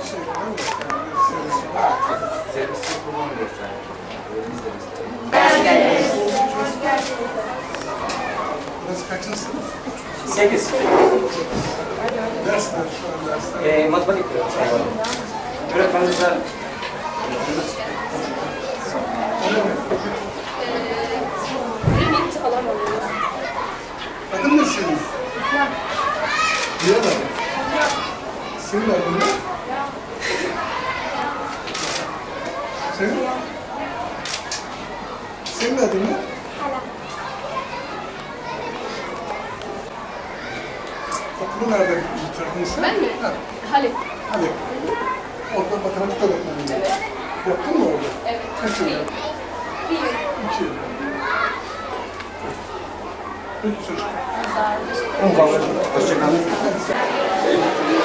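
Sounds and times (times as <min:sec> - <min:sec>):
children talking and calling out: 0:00.0 - 0:04.2, 0:05.3 - 0:58.0.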